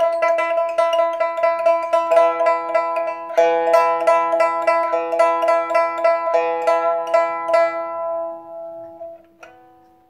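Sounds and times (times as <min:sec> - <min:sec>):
plucked lute melody: 0:00.0 - 0:10.0.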